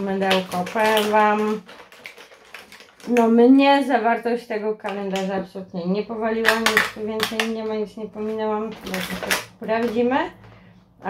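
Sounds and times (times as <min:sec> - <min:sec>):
woman's voice: 0:00.0 - 0:01.7, 0:03.0 - 0:10.5.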